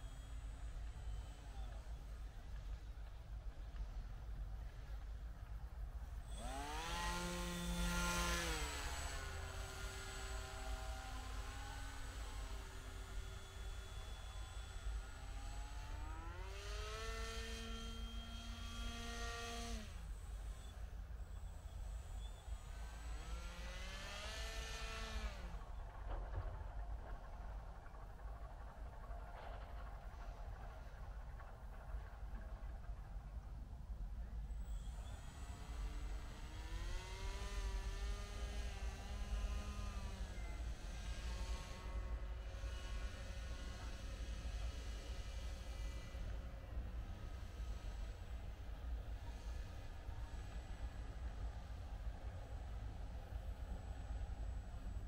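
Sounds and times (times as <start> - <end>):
small motor and propeller whine: 0.0 - 55.0
steady low rumble: 24.8 - 39.2.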